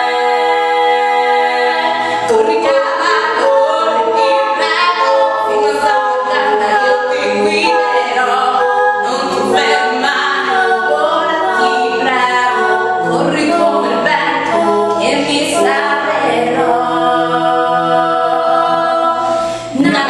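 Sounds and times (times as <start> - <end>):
a cappella harmony singing: 0.0 - 20.0.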